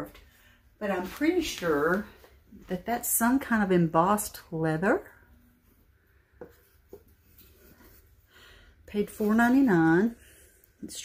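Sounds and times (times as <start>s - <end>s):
soft rubbing and scuffing: 0.0s - 3.0s, 5.6s - 8.3s, 8.9s - 10.2s.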